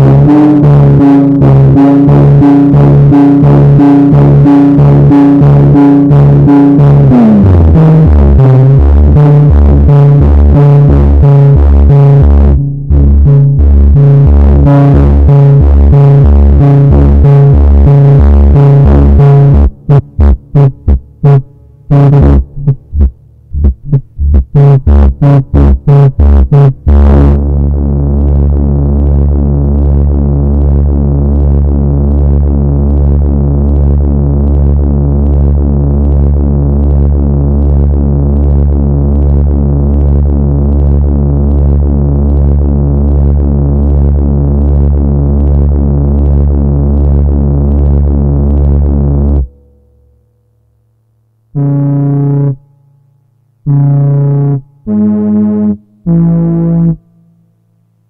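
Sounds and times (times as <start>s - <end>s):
buzzy synthesizer tone: 0.0s - 58.0s.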